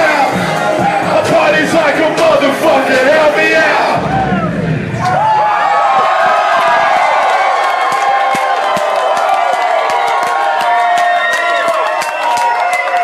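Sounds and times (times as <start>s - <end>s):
hip-hop backing track: 0.0s - 5.0s
crowd cheering and yelling: 0.0s - 13.0s
scattered clapping: 6.0s - 13.0s.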